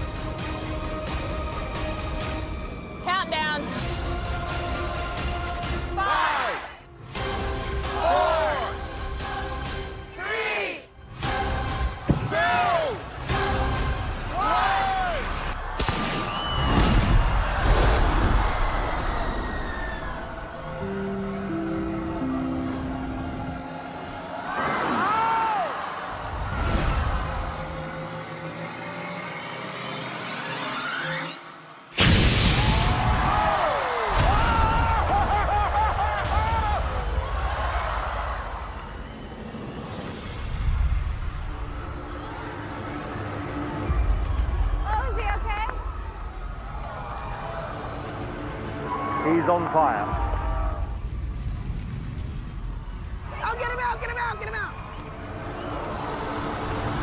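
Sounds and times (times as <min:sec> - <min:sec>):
crowd screaming: 0:14.2 - 0:29.1, 0:32.4 - 0:40.2, 0:41.5 - 0:51.1, 0:53.0 - 0:57.0.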